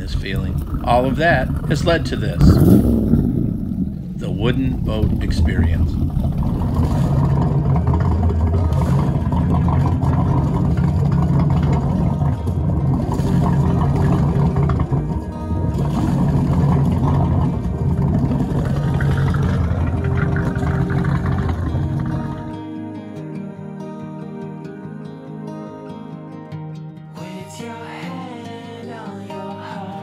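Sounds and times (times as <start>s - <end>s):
loud low engine rumble: 0.0s - 22.6s
music playing: 4.1s - 30.0s.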